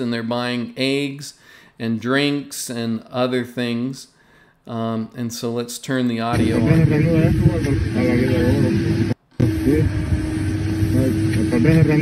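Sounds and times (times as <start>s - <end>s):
people talking: 0.0s - 4.1s, 4.7s - 12.0s.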